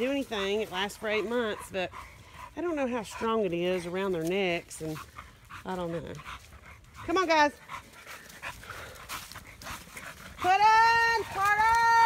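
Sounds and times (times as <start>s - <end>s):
dog panting: 0.0s - 11.6s
footsteps rustling through dry leaves: 0.0s - 12.0s.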